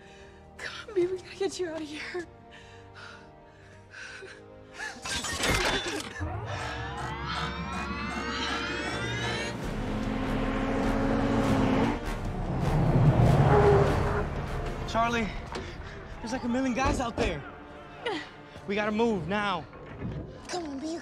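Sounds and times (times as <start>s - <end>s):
film score music: 0.0s - 21.0s.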